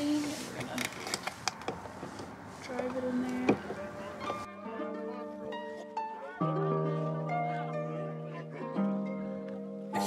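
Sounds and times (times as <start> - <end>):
outdoor background noise: 0.0 - 10.0
plucked-string music: 2.8 - 10.0.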